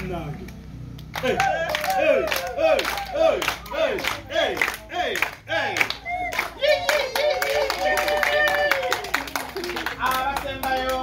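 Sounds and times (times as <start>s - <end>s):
group clapping: 0.0s - 11.0s.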